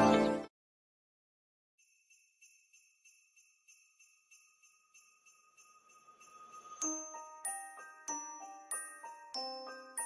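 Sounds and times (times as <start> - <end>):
shimmering jingle-bell music: 0.0 - 0.5, 1.8 - 10.0.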